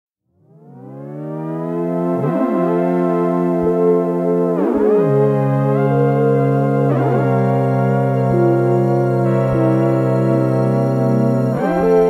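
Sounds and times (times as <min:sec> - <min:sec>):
synthesizer tone gliding up: 0:00.5 - 0:12.0.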